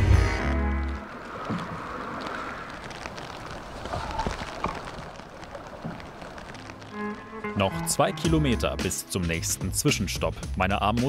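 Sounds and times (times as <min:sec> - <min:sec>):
rain falling on river: 0:00.0 - 0:09.8
small water splashes: 0:00.9 - 0:07.5.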